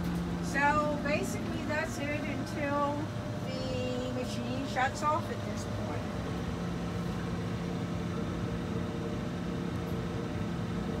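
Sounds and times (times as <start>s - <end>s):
washing machine humming: 0.0s - 11.0s.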